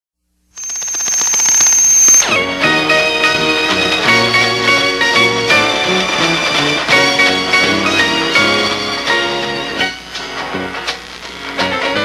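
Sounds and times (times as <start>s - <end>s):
high ringing tone: 0.6s - 2.4s
guitar music: 2.2s - 12.0s.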